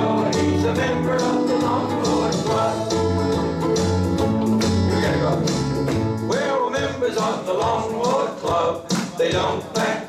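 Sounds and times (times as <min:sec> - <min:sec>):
low bass notes: 0:00.0 - 0:06.3
ukuleles strumming chords: 0:00.0 - 0:07.0.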